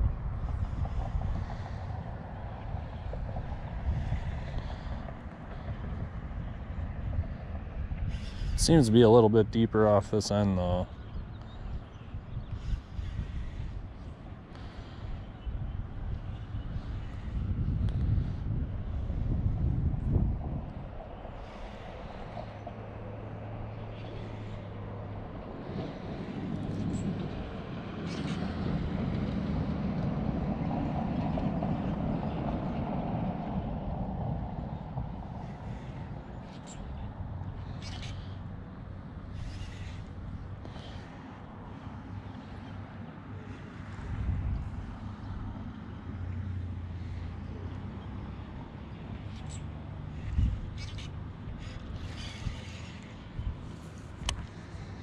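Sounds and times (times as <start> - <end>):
steady low traffic hum: 0.0 - 55.0
vehicle passing: 11.6 - 55.0.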